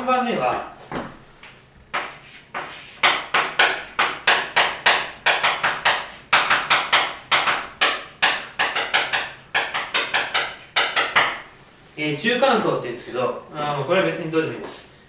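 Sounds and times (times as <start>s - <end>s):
chalk tapping on blackboard: 1.9s - 11.5s.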